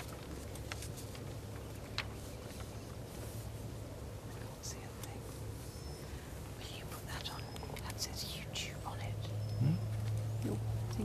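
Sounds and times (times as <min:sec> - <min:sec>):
person whispering: 0:04.4 - 0:05.3, 0:06.6 - 0:09.8.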